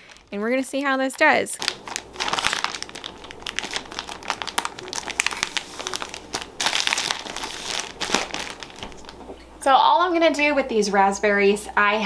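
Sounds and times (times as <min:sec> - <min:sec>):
plastic bag crinkling and rustling: 0:00.0 - 0:09.4.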